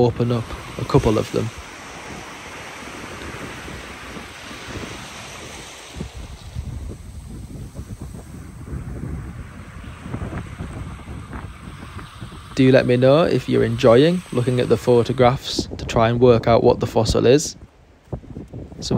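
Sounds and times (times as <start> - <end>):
surf washing up a beach: 0.0 - 17.7
wind rumbling on microphone: 0.0 - 18.9.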